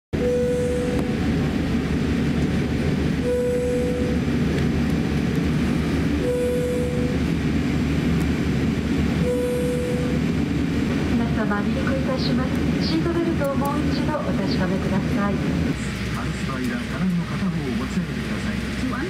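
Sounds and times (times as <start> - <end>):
airplane cabin rumble: 0.2 - 19.0
short steady tone: 3.2 - 4.2, 6.2 - 7.2, 9.2 - 10.2.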